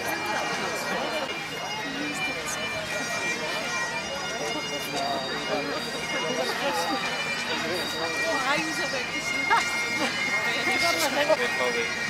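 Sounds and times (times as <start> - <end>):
bagpipes playing: 0.0 - 12.0
people talking: 0.0 - 12.0.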